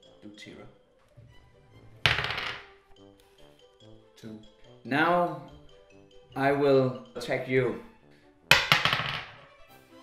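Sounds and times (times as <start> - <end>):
die clattering on wooden table: 2.1 - 2.7, 8.5 - 9.4.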